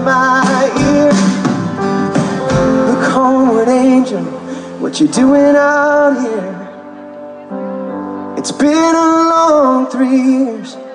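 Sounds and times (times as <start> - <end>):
drums: 0.0 - 5.5
live rock band playing: 0.0 - 10.9.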